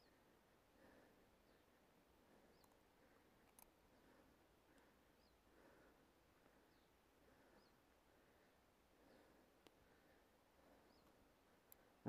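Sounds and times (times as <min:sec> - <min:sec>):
tiny clicks: 0:02.6 - 0:02.8, 0:03.4 - 0:03.8.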